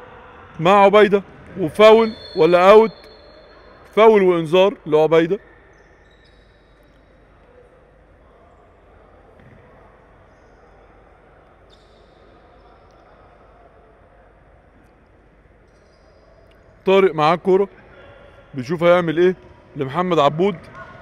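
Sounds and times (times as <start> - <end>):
distant players' voices calling: 0.6 - 5.4.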